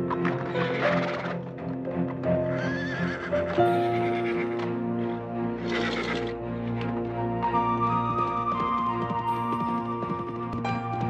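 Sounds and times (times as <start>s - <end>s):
hooves clopping: 0.0s - 4.7s, 5.6s - 11.0s
horse whinnying: 0.2s - 1.4s, 2.4s - 4.7s, 5.6s - 6.4s
music of long held notes: 3.4s - 11.0s.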